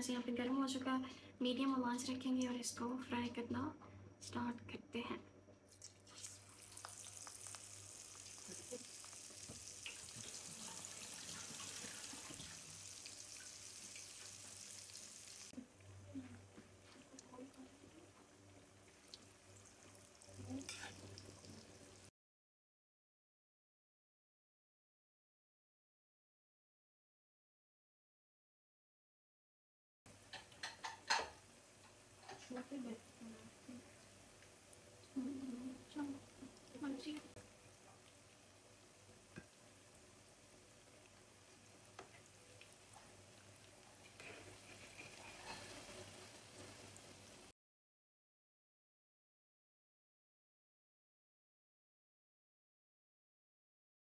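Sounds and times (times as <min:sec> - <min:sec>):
batter sizzling in hot oil: 0:05.7 - 0:15.6, 0:16.8 - 0:22.1, 0:30.1 - 0:47.5.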